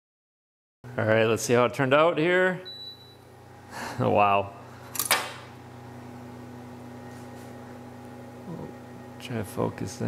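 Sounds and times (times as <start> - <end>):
steady low hum: 0.9 - 10.0.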